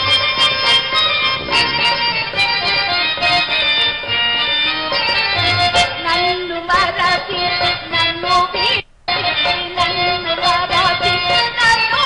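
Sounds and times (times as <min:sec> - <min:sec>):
harmonium accompaniment: 0:00.0 - 0:12.0
woman singing ornamented verse: 0:05.8 - 0:12.0.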